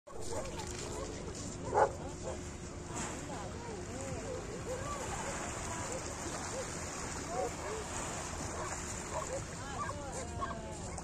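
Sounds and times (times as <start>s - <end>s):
dog barking: 0.2s - 2.4s.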